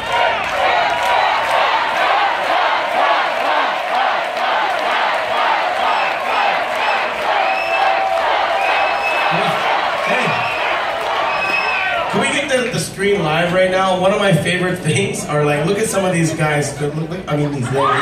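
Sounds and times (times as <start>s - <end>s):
audience cheering and shouting: 0.0s - 13.4s
shrill high whoops: 10.1s - 12.0s.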